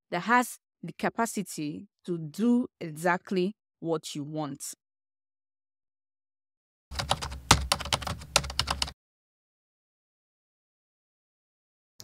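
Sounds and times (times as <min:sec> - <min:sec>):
keyboard typing clicks: 0:06.9 - 0:09.0.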